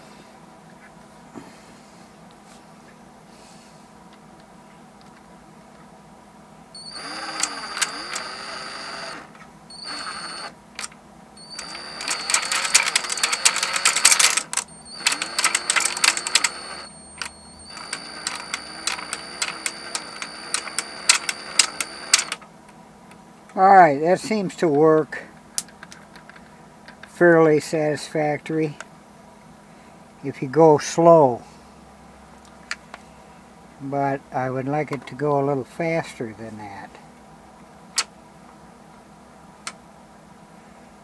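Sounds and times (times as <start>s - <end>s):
cordless drill motor whine: 6.8s - 10.6s, 11.4s - 22.4s.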